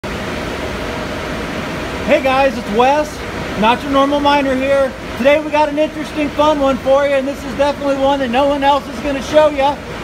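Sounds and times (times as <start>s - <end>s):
box fans rushing air: 0.0s - 10.0s.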